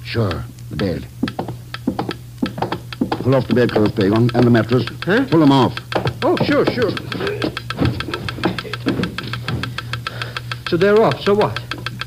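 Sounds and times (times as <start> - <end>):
geiger counter clicking: 0.1 - 12.0.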